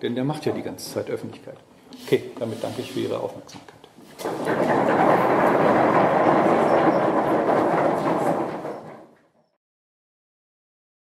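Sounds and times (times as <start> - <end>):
audience applauding: 4.3 - 8.9.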